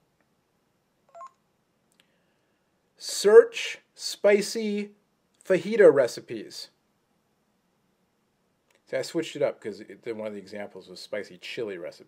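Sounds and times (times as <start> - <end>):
short electronic phone beep: 1.1 - 1.4.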